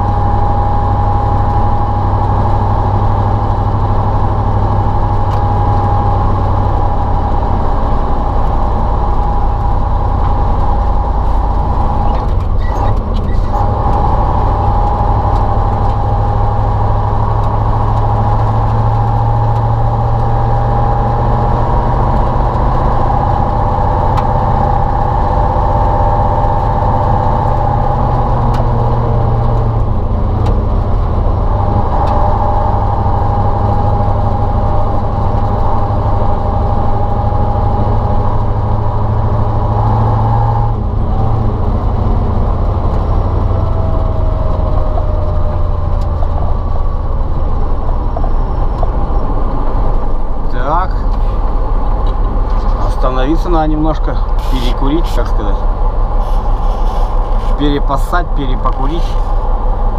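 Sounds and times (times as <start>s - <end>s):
diesel truck engine running: 0.0s - 59.9s.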